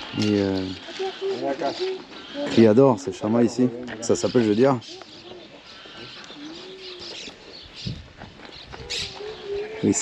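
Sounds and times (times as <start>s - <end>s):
low cooing animal calls: 0.0s - 3.3s, 4.0s - 10.0s.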